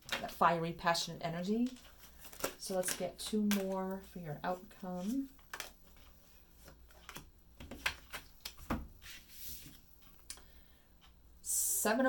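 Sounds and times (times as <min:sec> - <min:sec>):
cards being shuffled: 0:01.6 - 0:10.2
card sliding from deck: 0:09.0 - 0:09.8.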